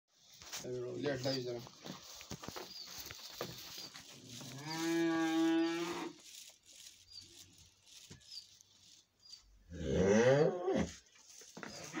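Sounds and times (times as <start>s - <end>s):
knocks and shuffling: 0.1s - 9.7s, 10.8s - 12.0s
cow mooing: 9.7s - 10.9s.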